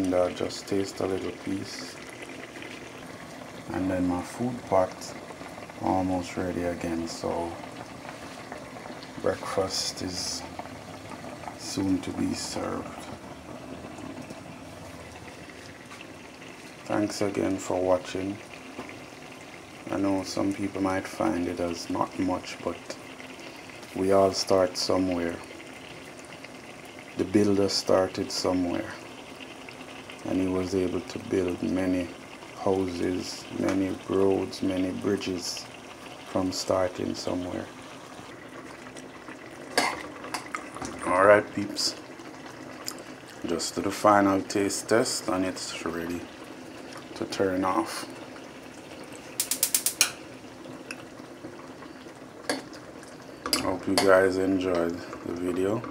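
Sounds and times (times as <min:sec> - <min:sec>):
water boiling in a pot: 0:00.0 - 0:55.9.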